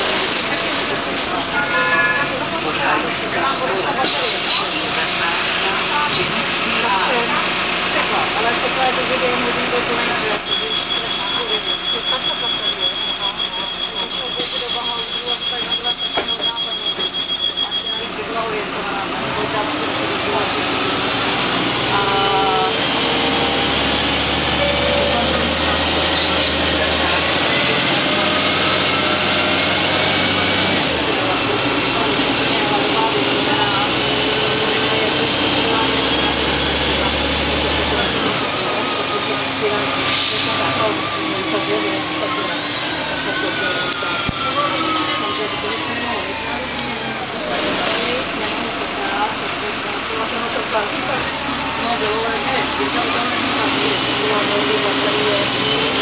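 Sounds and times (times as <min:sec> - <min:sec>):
bus engine whining: 0:00.0 - 0:56.0
door warning tone: 0:10.4 - 0:18.2.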